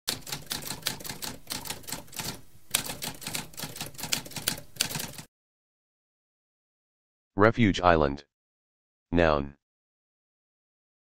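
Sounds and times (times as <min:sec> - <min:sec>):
typewriter keys clacking: 0:00.1 - 0:05.3.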